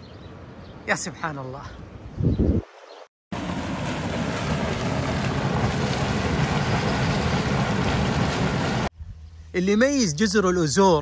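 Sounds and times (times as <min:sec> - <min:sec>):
churning boiling water and steam: 0:03.3 - 0:08.9.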